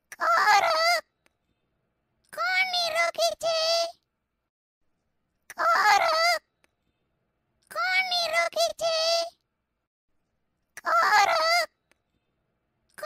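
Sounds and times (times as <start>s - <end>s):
squawky cartoon voice calling: 0.1s - 1.1s, 2.4s - 4.0s, 5.5s - 6.5s, 7.7s - 9.4s, 10.8s - 11.8s.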